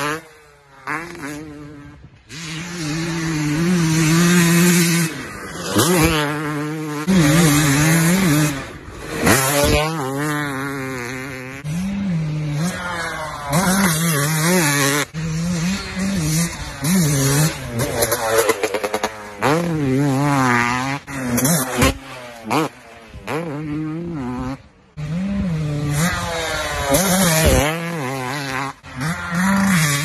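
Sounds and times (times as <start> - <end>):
dirt bike engines revving: 0.0 - 30.0.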